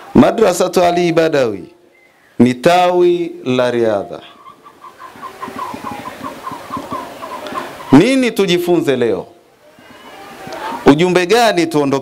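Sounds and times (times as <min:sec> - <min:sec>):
bird chirping rapidly: 0:04.0 - 0:08.1.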